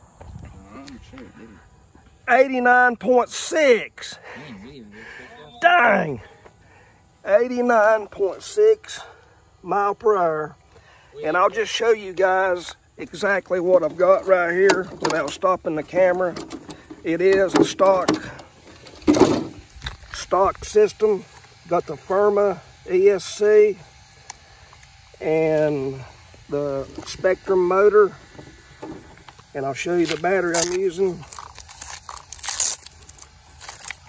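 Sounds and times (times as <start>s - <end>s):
plastic body shell rustling scrape: 18.2s - 19.6s
battery pack handling rustle: 29.0s - 34.0s.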